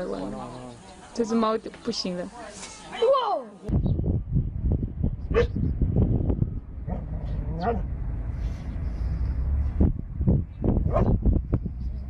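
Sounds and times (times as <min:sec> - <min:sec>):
steady low rumble: 0:03.7 - 0:12.0
dog barking: 0:05.3 - 0:05.5, 0:07.6 - 0:07.9, 0:10.8 - 0:11.2.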